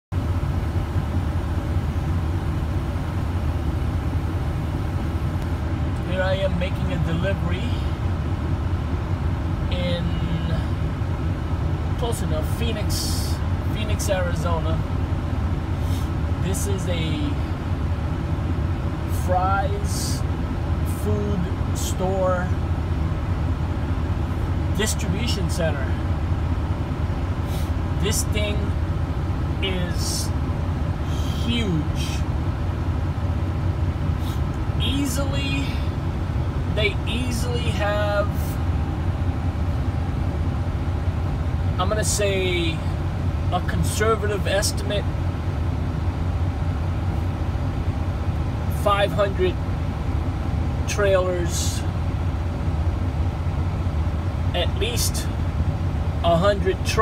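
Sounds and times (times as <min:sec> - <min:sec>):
diesel truck engine running: 0:00.1 - 0:57.0.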